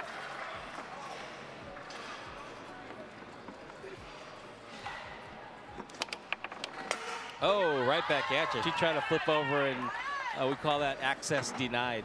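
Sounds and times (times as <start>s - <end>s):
murmur of large hall: 0.0s - 12.0s.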